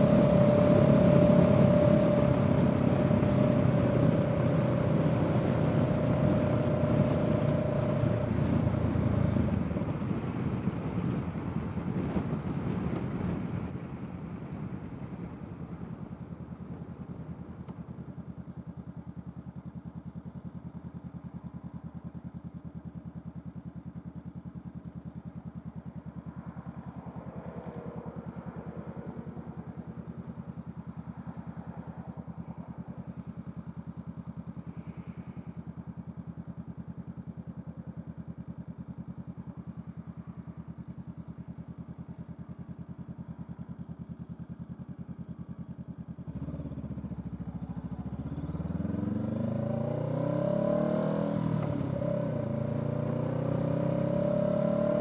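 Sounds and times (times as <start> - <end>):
motorcycle engine idling: 0.0 - 49.9
motorcycle revving and pulling away: 0.0 - 55.0.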